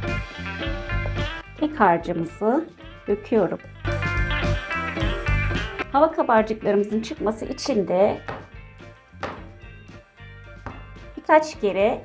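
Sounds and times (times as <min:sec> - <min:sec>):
guitar music: 0:00.0 - 0:11.9.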